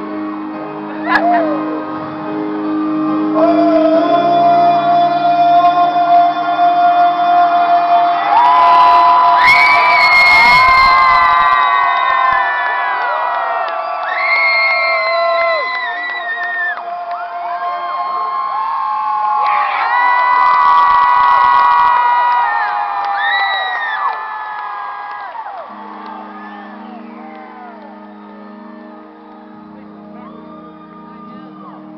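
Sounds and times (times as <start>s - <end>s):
audience cheering and whooping: 0.0s - 31.9s
held music chord: 25.7s - 31.9s.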